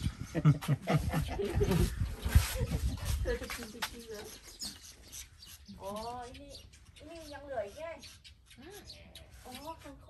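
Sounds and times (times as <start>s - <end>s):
wind rumble on microphone: 0.0s - 3.8s.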